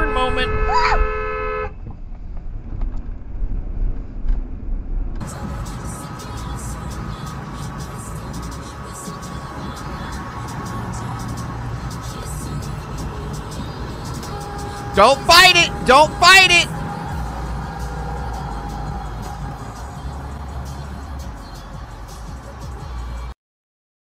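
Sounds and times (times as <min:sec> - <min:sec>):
car road and engine rumble: 0:00.0 - 0:23.4
highway road noise: 0:00.0 - 0:23.4.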